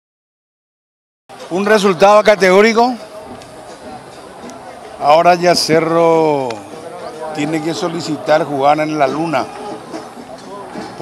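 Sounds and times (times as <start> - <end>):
low steady background noise: 1.3 - 11.0.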